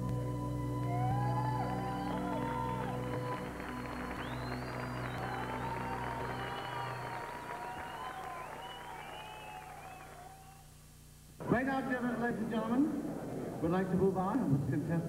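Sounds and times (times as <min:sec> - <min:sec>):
slow stage music: 0:00.0 - 0:14.8
audience applause and cheering: 0:00.7 - 0:10.7.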